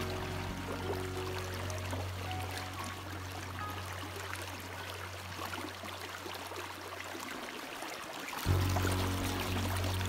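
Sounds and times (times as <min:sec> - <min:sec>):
background music low note: 0:00.0 - 0:04.7, 0:08.5 - 0:10.0
creek water running over rocks: 0:00.0 - 0:10.0.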